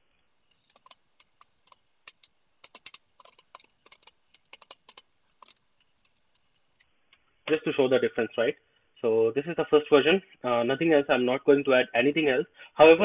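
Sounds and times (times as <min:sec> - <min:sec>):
typing on computer keyboard: 0:00.5 - 0:06.6.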